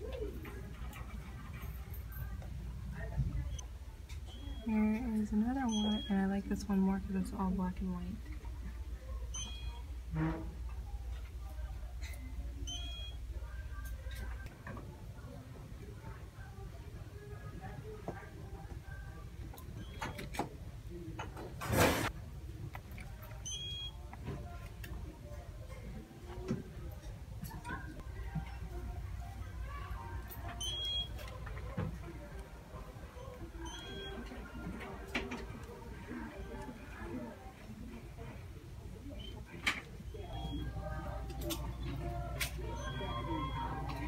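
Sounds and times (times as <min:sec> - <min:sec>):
faint background music: 0:00.0 - 0:44.0
low steady shop rumble: 0:00.0 - 0:44.0
electronic beep: 0:05.6 - 0:06.3, 0:40.2 - 0:40.9, 0:42.6 - 0:44.0.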